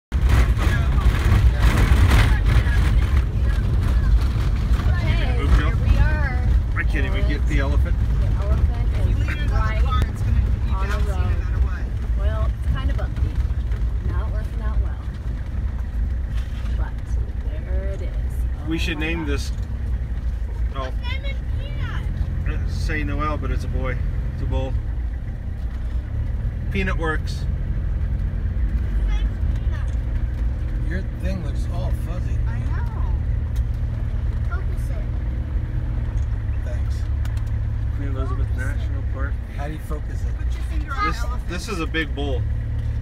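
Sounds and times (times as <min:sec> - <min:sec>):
vehicle rumbling on dirt road: 0:00.0 - 0:43.0
people talking: 0:00.6 - 0:13.3, 0:14.0 - 0:15.1, 0:38.0 - 0:42.4.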